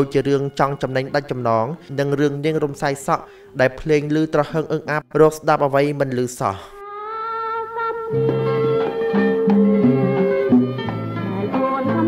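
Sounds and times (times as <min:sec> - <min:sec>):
man speaking: 0:00.0 - 0:06.8
instrumental music: 0:06.8 - 0:12.0.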